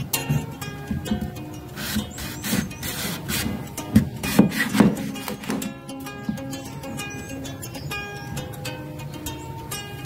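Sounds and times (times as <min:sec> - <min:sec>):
knife sawing through fruit rind: 0:01.8 - 0:03.6, 0:04.2 - 0:05.4.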